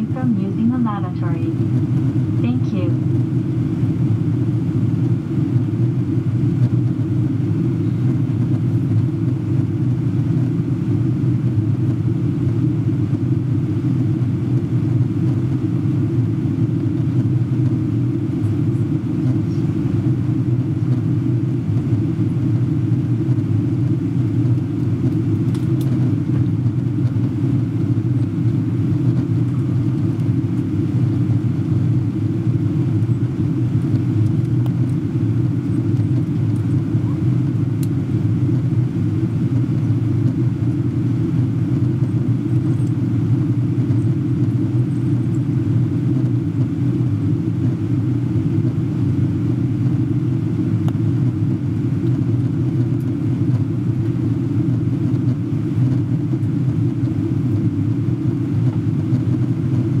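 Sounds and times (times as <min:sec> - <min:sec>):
airliner cabin rumble: 0:00.0 - 1:00.0.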